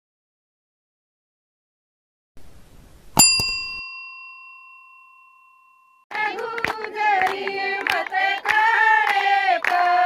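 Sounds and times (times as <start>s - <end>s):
bright bell ding: 3.2s - 6.1s.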